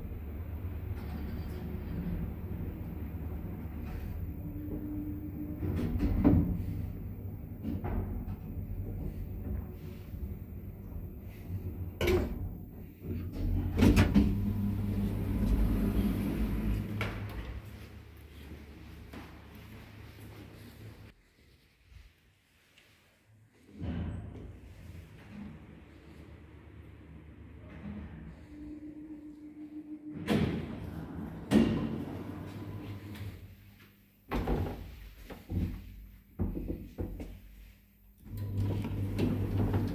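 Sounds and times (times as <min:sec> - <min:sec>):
lift doors rumbling open: 0:00.0 - 0:18.1, 0:23.8 - 0:33.5, 0:38.3 - 0:39.9.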